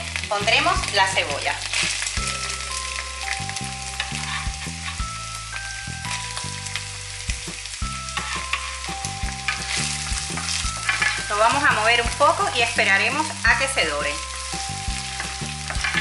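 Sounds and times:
onion sizzling in oil: 0:00.0 - 0:16.0
soft background music: 0:00.0 - 0:16.0.

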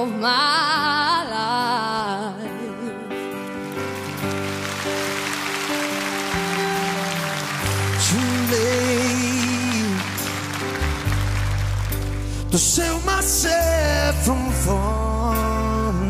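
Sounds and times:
live band playing pop ballad: 0:00.0 - 0:16.0
audience applause: 0:03.6 - 0:12.8.

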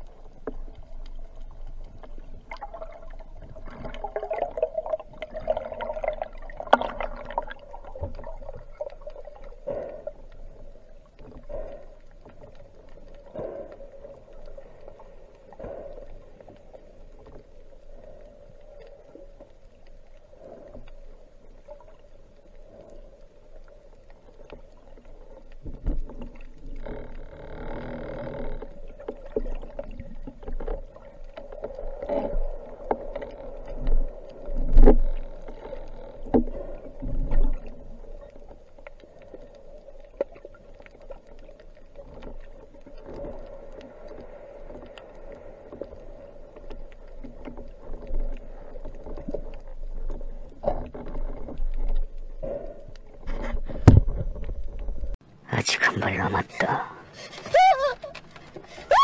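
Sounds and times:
water rushing and bubbling: 0:00.0 - 0:55.4
underwater hum: 0:00.0 - 0:59.0.

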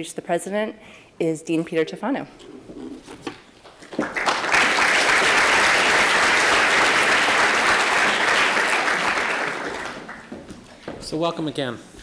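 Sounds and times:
audience applauding: 0:03.8 - 0:10.6.

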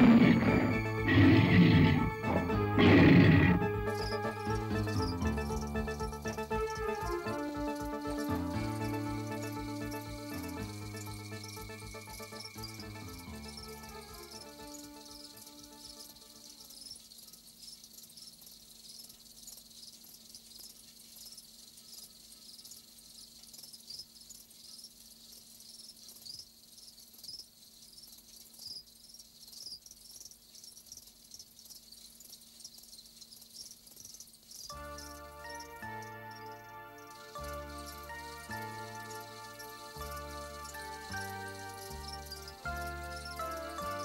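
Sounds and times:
background music: 0:00.0 - 0:16.8, 0:34.7 - 0:44.0
crickets chirping: 0:00.0 - 0:44.0.

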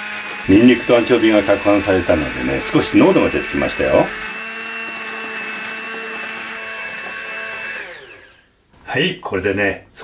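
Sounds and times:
hand blender whining: 0:00.0 - 0:08.5.

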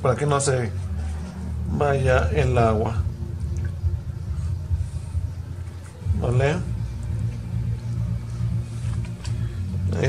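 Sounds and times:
machinery humming: 0:00.0 - 0:10.0.

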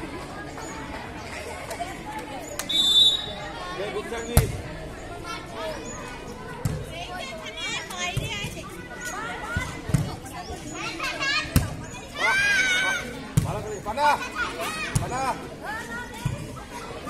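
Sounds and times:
girls chattering and shouting: 0:00.0 - 0:17.0.

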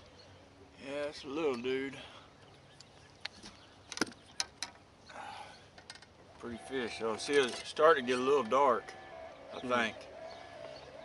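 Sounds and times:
fishing gear clicks and knocks: 0:02.8 - 0:04.8, 0:05.7 - 0:06.2.

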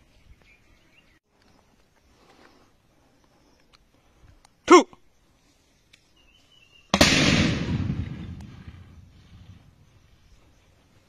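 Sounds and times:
explosion boom and rumble: 0:07.0 - 0:09.6.

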